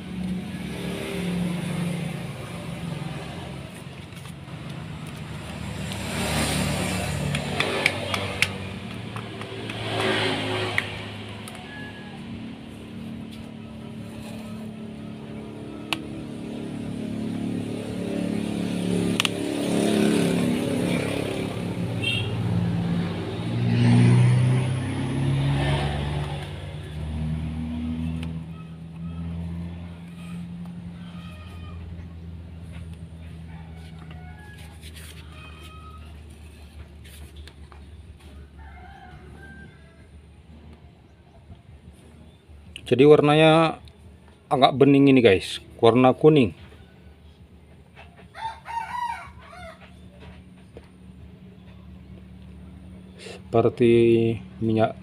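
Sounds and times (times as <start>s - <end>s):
vehicle engines passing: 0.0s - 55.0s.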